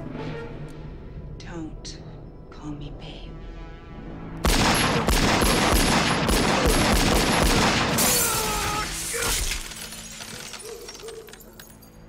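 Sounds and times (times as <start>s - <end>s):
rapid gunfire: 4.5s - 8.0s
glass shattering: 8.0s - 12.0s.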